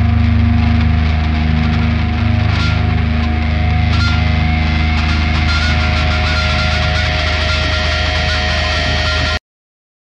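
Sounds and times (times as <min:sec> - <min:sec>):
heavy metal music: 0:00.0 - 0:09.4.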